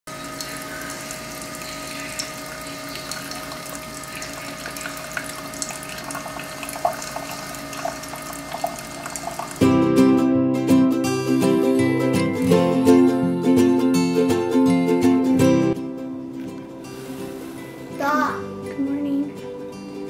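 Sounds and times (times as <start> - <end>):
drips and gurgles: 0.1 - 9.6
coffee maker humming: 0.1 - 9.8
coffee pouring into mug: 0.2 - 9.7
plucked-string music: 9.5 - 20.0.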